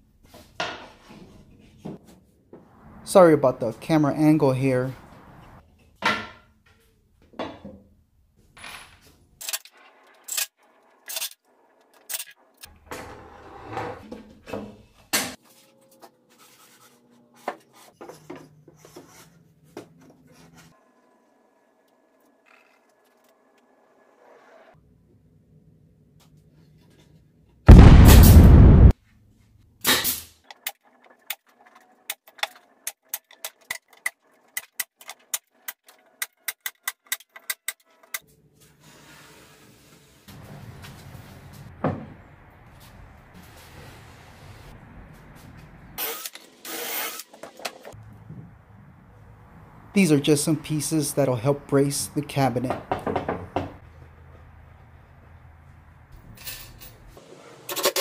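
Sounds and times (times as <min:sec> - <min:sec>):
loud noisy burst: 0:27.7 - 0:28.9
wood panels knocking: 0:52.7 - 0:53.8.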